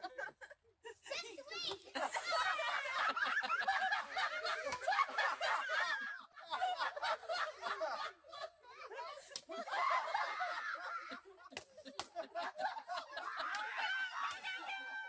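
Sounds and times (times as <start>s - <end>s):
people laughing and snickering: 0.0s - 15.0s
people talking: 1.0s - 5.9s.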